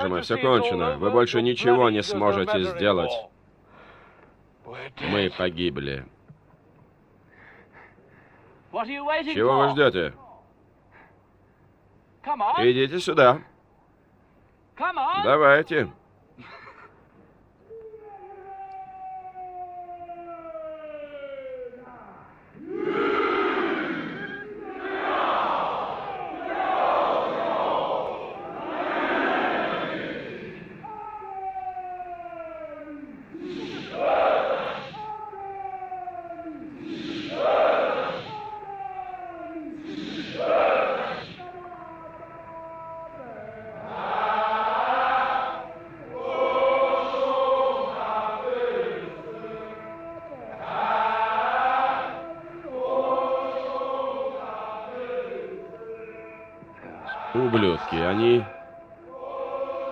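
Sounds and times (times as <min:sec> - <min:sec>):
men shouting: 0:17.7 - 0:59.9
men chanting war song: 0:22.6 - 0:31.3, 0:32.2 - 0:59.9.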